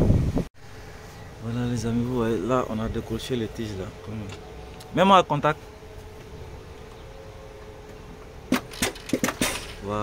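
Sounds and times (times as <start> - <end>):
faint steady hum: 0.6 - 10.0.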